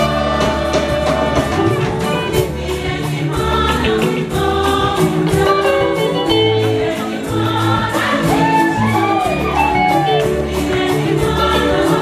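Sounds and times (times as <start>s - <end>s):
gospel choir singing: 0.0s - 12.0s
live band with drumbeat and bass: 0.0s - 12.0s.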